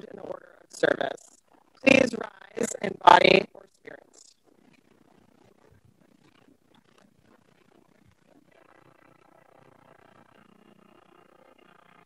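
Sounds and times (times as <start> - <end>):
faint low room noise: 0.0 - 12.0.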